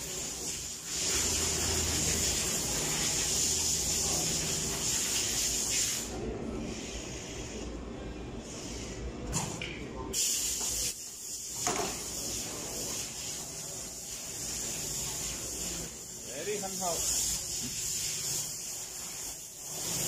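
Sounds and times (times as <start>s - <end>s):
machine hiss: 0.0s - 6.1s, 10.2s - 20.0s.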